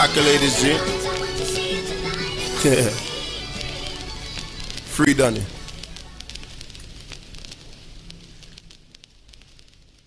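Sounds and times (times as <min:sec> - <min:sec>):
low hum: 0:00.0 - 0:09.0
faint crackling and clicks: 0:00.2 - 0:10.0.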